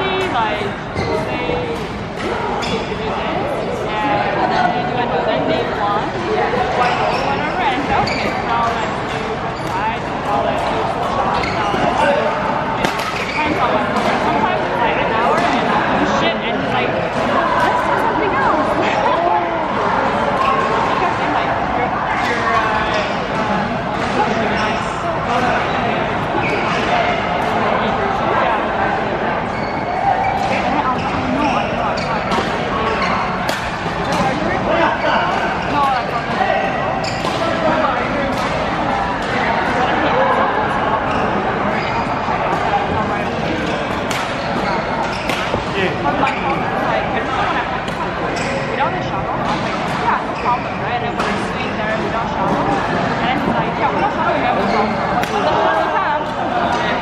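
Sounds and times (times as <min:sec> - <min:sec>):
chatter of voices: 0:00.0 - 0:57.0
rackets hitting shuttlecock: 0:12.8 - 0:14.2, 0:33.4 - 0:34.4, 0:37.2 - 0:37.5, 0:43.6 - 0:45.8, 0:55.2 - 0:55.5.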